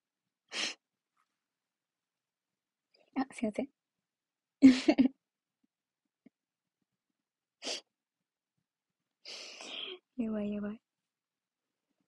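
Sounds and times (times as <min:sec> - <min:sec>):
woman laughing breathily: 0:04.6 - 0:05.1.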